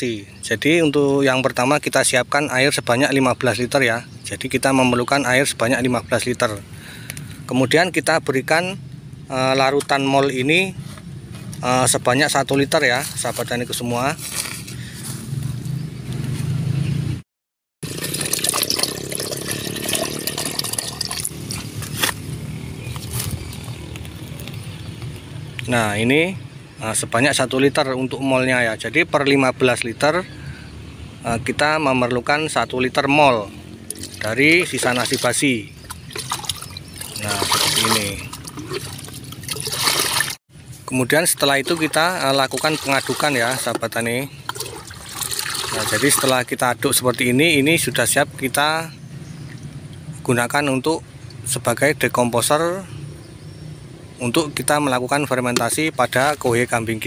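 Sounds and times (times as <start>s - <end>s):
liquid pouring and gurgling: 17.8s - 21.8s, 34.0s - 40.4s, 41.6s - 43.7s, 44.5s - 46.3s.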